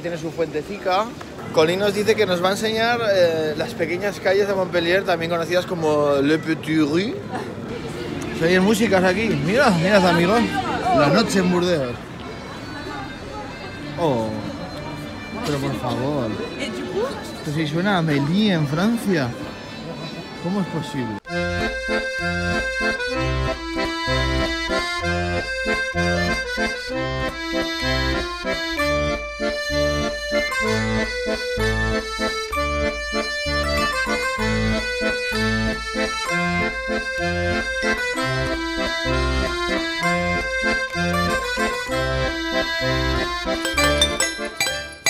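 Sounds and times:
accordion playing folk tune: 1.6 - 45.0.

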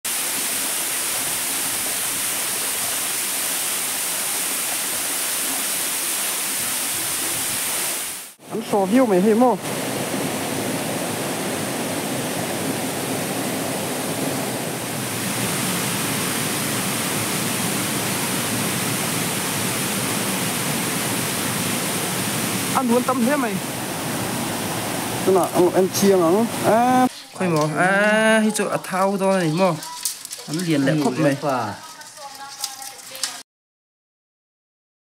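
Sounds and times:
waterfall and stream rushing: 0.1 - 27.7
person speaking: 8.4 - 9.7, 22.8 - 23.7, 25.2 - 33.4.

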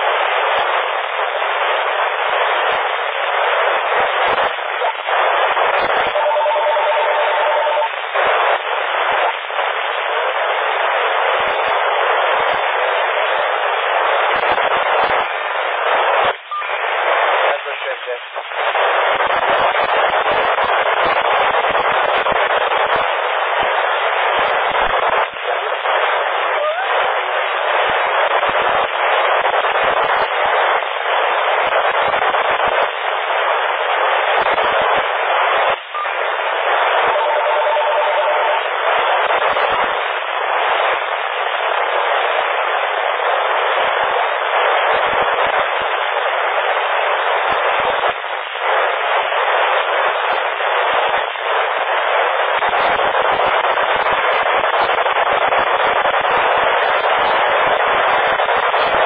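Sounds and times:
radio static hiss: 0.0 - 59.0.

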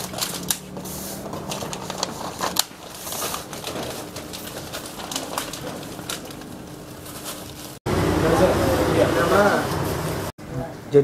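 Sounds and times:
paper wrappers rustling: 0.0 - 7.8.

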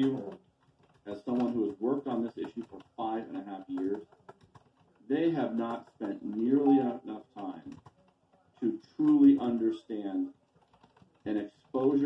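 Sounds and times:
man speaking over video call: 0.0 - 0.4, 1.1 - 4.0, 5.1 - 7.8, 8.6 - 10.3, 11.3 - 12.0.

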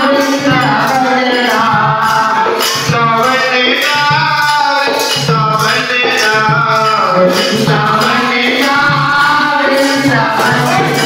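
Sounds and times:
devotional song with instruments: 0.0 - 11.0.

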